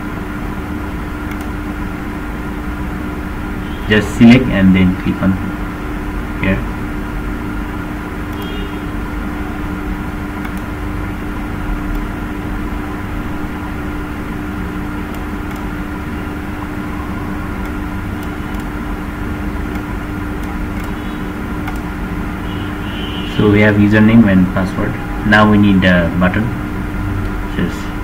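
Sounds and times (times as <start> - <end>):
low background hum: 0.0 - 28.0
faint clicks: 1.3 - 1.5, 10.4 - 10.7, 15.1 - 15.7, 17.6 - 18.7, 21.6 - 21.9.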